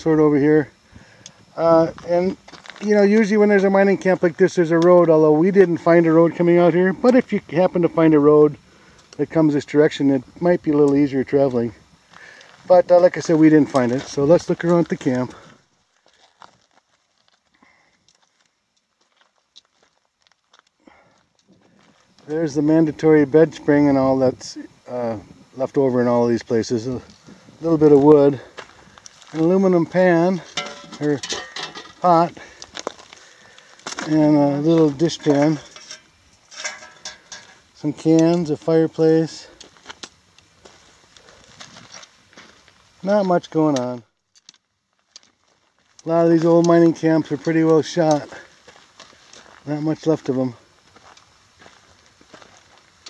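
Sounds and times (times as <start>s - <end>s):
footsteps on gravel: 1.8s - 5.6s, 10.7s - 22.8s, 26.9s - 53.0s.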